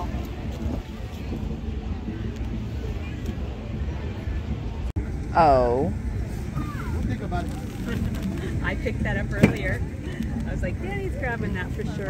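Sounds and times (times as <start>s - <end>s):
wind rumble on microphone: 0.0s - 5.1s
faint distant voices: 0.0s - 12.0s.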